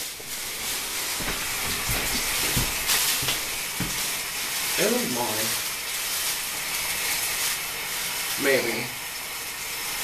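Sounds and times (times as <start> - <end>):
steady hiss: 0.0 - 10.0
soft footfalls: 0.2 - 4.2.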